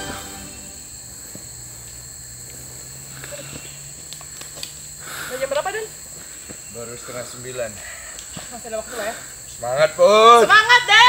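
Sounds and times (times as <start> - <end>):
low hum: 0.0 - 2.8
high-pitched insect drone: 0.0 - 11.0.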